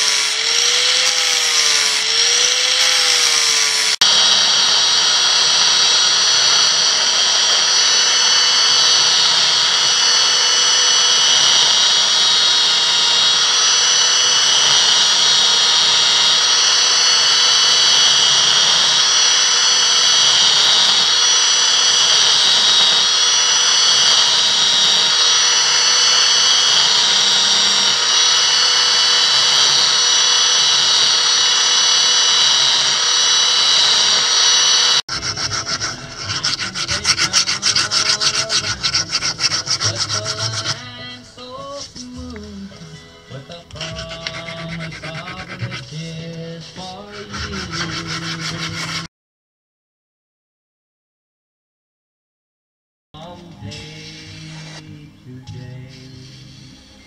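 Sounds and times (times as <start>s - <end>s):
hand file rasping: 0.0s - 4.2s, 5.3s - 42.3s, 43.7s - 49.1s
belt sander whining: 0.0s - 42.5s, 43.5s - 49.1s.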